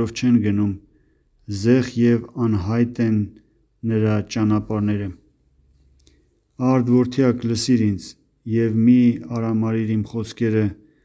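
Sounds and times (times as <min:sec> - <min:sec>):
man reading aloud: 0:00.0 - 0:11.0.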